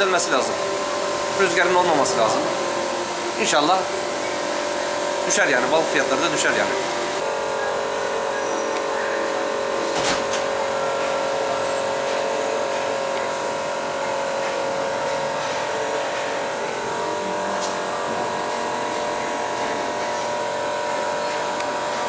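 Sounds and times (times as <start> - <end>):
electric machine hum: 0.0 - 22.0.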